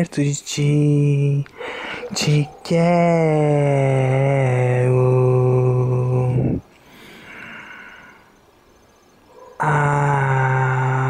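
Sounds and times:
man singing long held note: 3.0 - 6.6.

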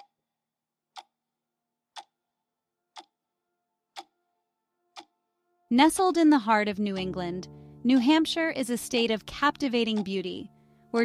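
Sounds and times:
clock ticking: 0.9 - 1.2, 1.9 - 2.2, 2.9 - 3.2, 3.9 - 4.1, 4.9 - 5.1, 5.7 - 11.0.

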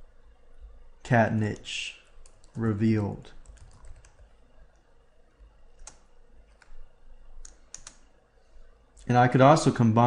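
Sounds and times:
computer keyboard keystrokes: 3.4 - 4.3, 5.8 - 6.8, 7.4 - 8.0.

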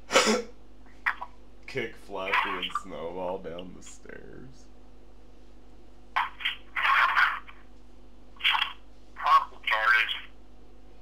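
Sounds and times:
faint steady hum: 0.0 - 11.0
tinny voice through small speaker: 6.2 - 7.6, 8.4 - 10.4.

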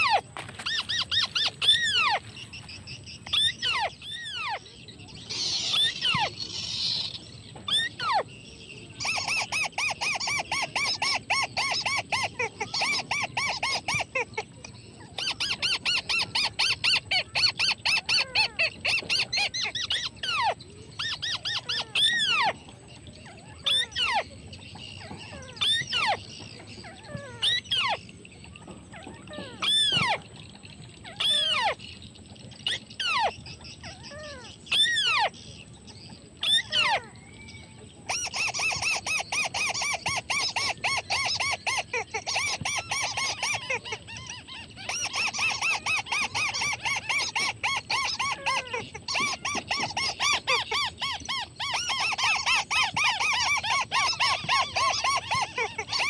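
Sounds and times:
bird rapid chattering: 0.0 - 56.0.

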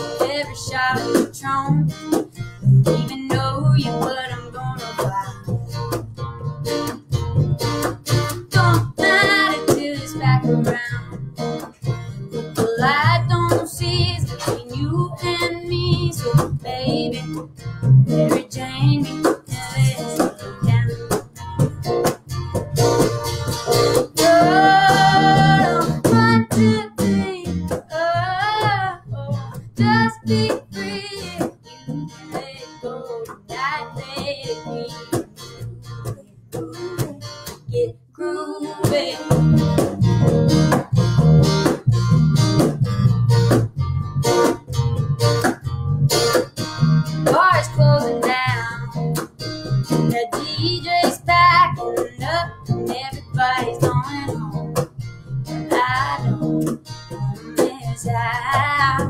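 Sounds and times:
woman singing with vibrato: 0.0 - 2.0, 3.0 - 5.6, 8.5 - 11.2, 12.6 - 17.4, 18.1 - 21.0, 24.1 - 39.7, 47.3 - 49.0, 50.1 - 54.8, 55.6 - 56.5, 57.4 - 59.0
strummed acoustic guitars: 0.0 - 59.0.

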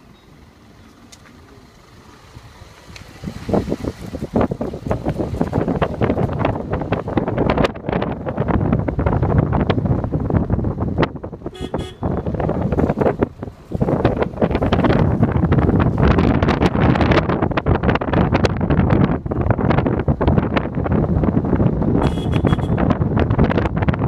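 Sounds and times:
wind buffeting microphone: 2.3 - 24.0
short horn toot: 11.5 - 12.4, 22.0 - 22.9.

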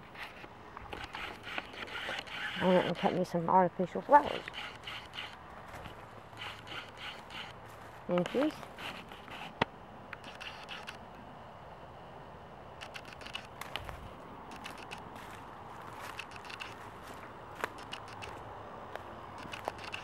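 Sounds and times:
camera handling rustle: 0.1 - 3.1, 4.3 - 11.0, 12.8 - 18.4, 19.0 - 20.0
footsteps in dry leaves: 5.5 - 6.3, 7.3 - 9.2, 13.6 - 17.8.

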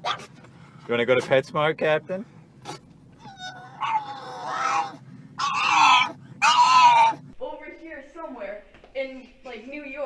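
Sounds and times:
dog crying in high-pitched wails: 3.2 - 7.3.

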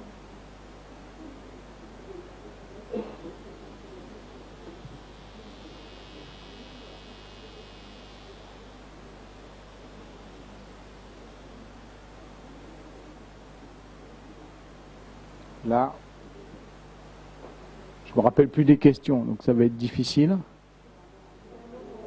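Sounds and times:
high-pitched whine: 0.0 - 17.3
low electrical hum: 0.0 - 22.0.

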